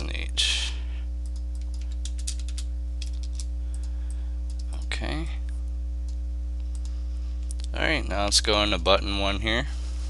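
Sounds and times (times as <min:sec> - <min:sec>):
steady electrical hum: 0:00.0 - 0:10.0
keyboard keystrokes: 0:01.3 - 0:03.5.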